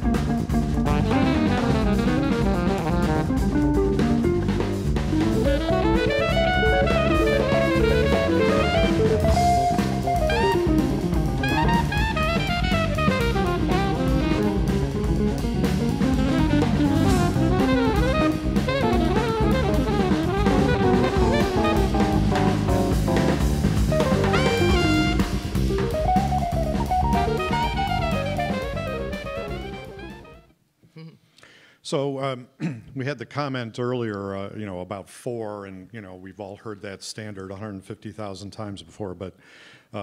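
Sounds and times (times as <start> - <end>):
jazz music over loudspeakers: 0.0 - 30.5.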